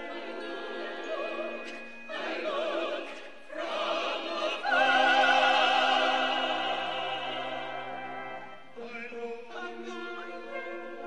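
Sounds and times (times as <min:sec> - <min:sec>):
church choir singing: 0:00.0 - 0:11.0
strings: 0:00.0 - 0:11.0.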